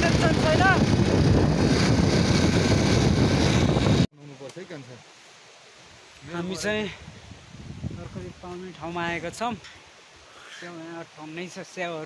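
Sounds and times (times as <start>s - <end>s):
motorcycle road noise: 0.0s - 4.1s
wind buffeting microphone: 0.0s - 4.1s, 6.7s - 9.6s.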